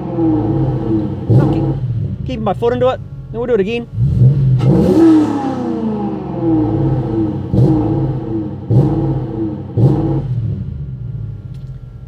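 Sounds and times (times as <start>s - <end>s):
engine revving and throttle blips: 0.0s - 12.0s.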